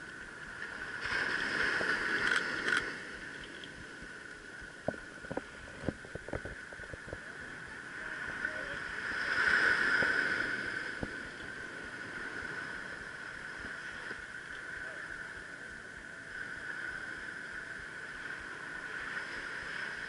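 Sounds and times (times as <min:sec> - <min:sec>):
small ocean waves breaking: 0:00.0 - 0:20.0
camera handling clicks: 0:02.2 - 0:02.8.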